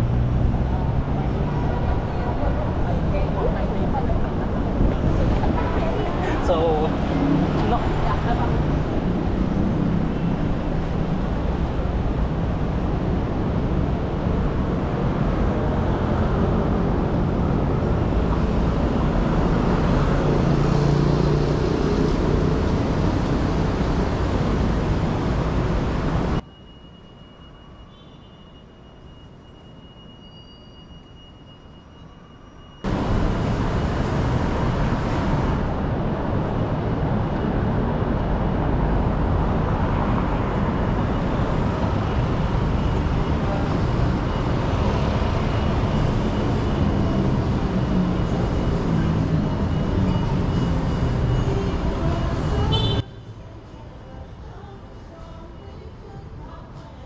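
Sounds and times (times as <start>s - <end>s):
busy city street traffic: 0.0s - 57.0s.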